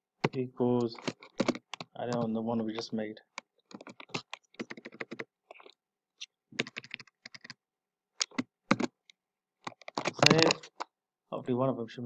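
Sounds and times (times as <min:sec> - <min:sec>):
computer keyboard typing: 0:00.2 - 0:05.7, 0:06.6 - 0:07.6, 0:08.2 - 0:09.0, 0:09.6 - 0:10.8.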